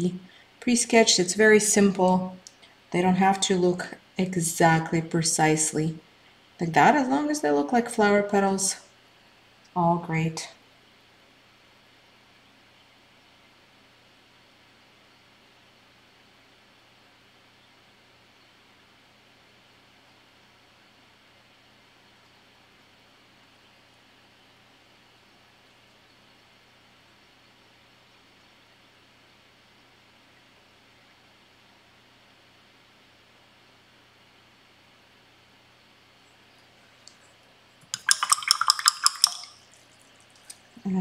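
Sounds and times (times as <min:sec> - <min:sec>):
faint steady hiss: 0:00.0 - 0:41.0
paintbrush rinsed in water cup: 0:37.9 - 0:40.8.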